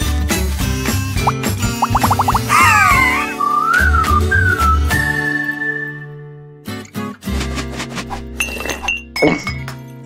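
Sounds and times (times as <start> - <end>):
background music: 0.0 - 8.7.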